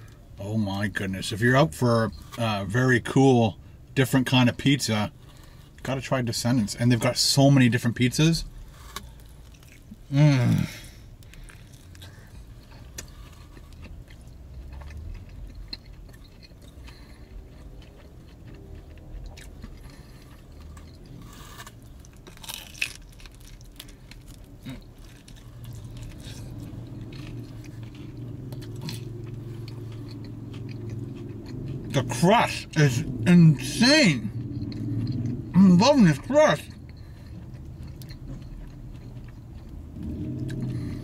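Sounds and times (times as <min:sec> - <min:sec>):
low steady hum: 0:00.0 - 0:41.0
person chewing crunchy food: 0:08.4 - 0:41.0.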